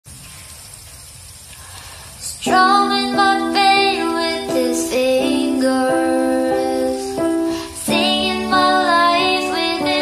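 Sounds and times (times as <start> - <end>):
steady background hiss: 0.1 - 10.0.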